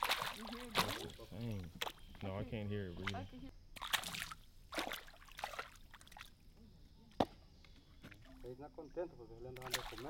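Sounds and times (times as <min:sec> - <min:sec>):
water splashing: 0:00.0 - 0:02.2, 0:02.8 - 0:06.4, 0:09.5 - 0:10.0.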